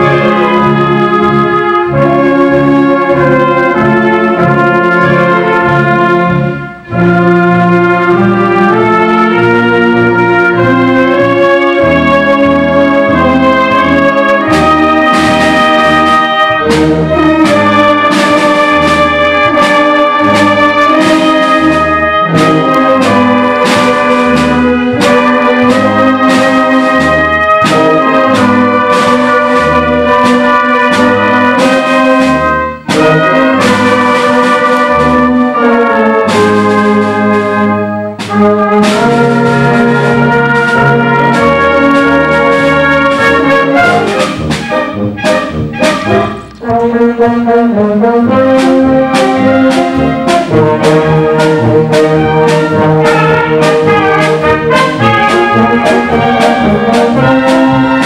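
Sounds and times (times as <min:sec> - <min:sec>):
concert band playing: 0:00.0 - 0:58.0.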